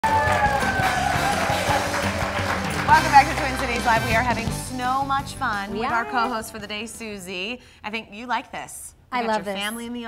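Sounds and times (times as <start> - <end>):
music with steady beat: 0.6 - 5.9.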